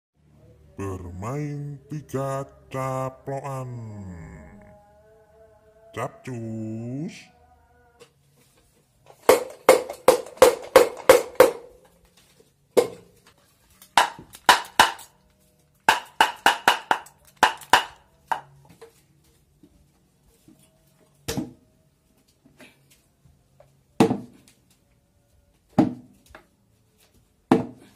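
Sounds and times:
wooden mask jaw clacking: 13.9s - 15.1s, 15.9s - 18.5s.

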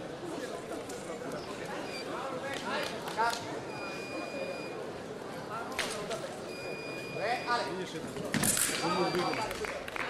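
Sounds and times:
people talking in echoing hall: 0.0s - 10.0s.

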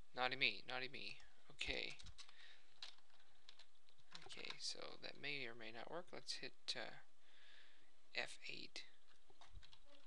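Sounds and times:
keyboard typing: 1.2s - 4.8s, 9.0s - 10.0s.

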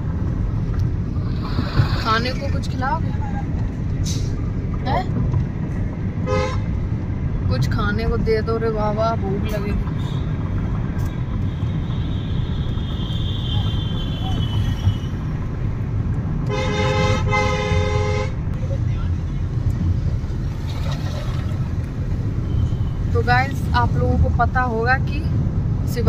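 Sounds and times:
road rumble inside car: 0.0s - 26.0s
vehicle horn honking: 6.3s - 6.7s, 12.2s - 15.2s, 16.5s - 18.4s.

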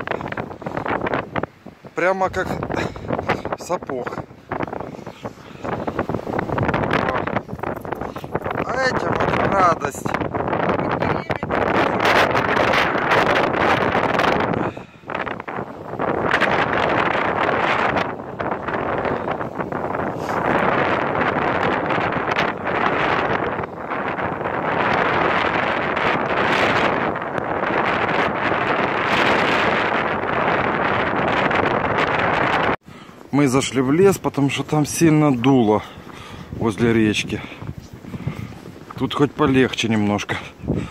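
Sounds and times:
strong wind on microphone: 0.0s - 40.9s.

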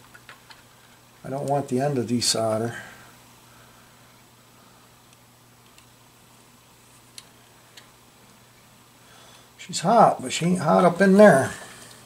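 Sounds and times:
steady low hum: 0.0s - 12.0s
soldering iron light ticks: 7.1s - 7.9s.

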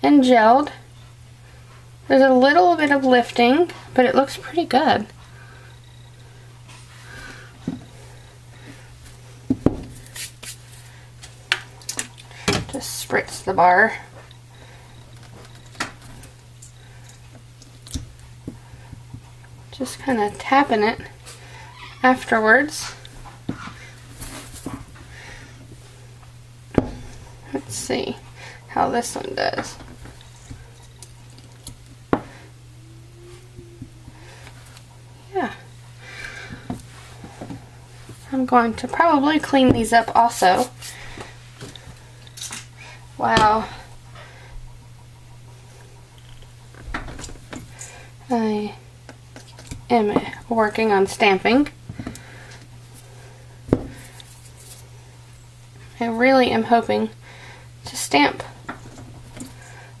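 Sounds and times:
low hum: 12.2s - 49.0s
soft handling rustle: 23.0s - 26.0s.

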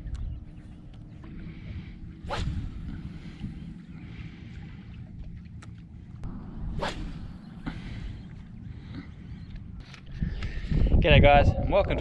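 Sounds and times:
low rumble: 0.0s - 11.7s
quick whooshes: 2.2s - 3.4s, 6.6s - 7.9s.

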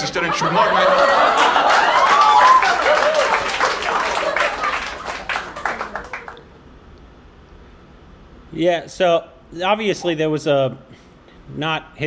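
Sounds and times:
audience laughing: 0.0s - 6.4s
audience applauding: 0.6s - 6.6s.

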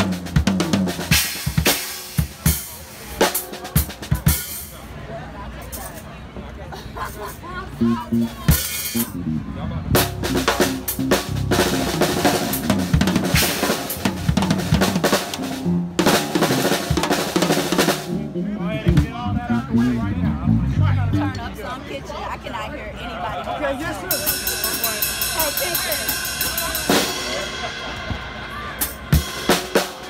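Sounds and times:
drum kit playing: 0.0s - 4.7s, 7.8s - 21.4s, 24.1s - 30.0s
voices: 0.0s - 30.0s.

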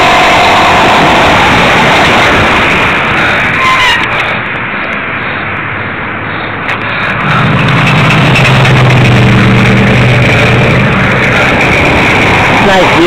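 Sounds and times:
two-stroke engine revving: 7.1s - 13.0s.

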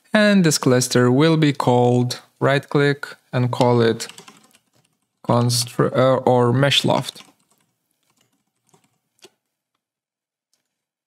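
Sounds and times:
faint keyboard keystrokes: 3.5s - 5.6s, 6.8s - 9.4s.

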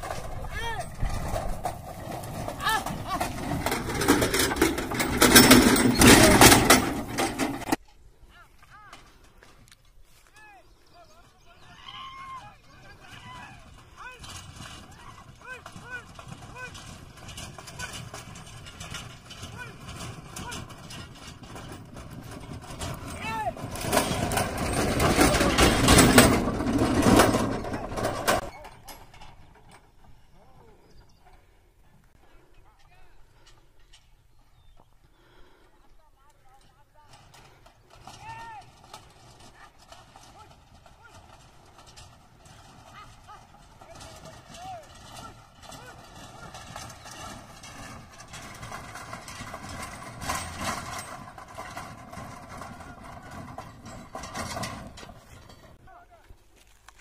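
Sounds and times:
bullock hoofbeats: 0.0s - 7.8s, 10.4s - 34.8s, 36.4s - 56.7s
cart rattling: 0.0s - 7.9s, 10.4s - 30.4s, 36.4s - 57.0s.

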